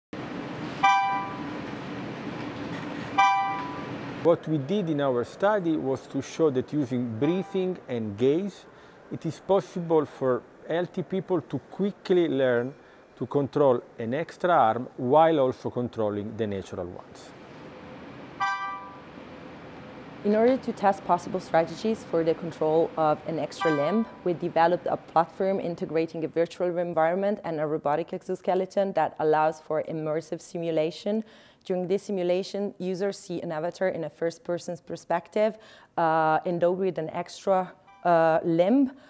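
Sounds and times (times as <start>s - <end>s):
faint steady hum: 0.2s - 39.0s
short beep: 0.8s - 1.5s, 3.2s - 3.9s, 7.2s - 7.7s
electronic beep-chimes: 7.2s - 7.8s.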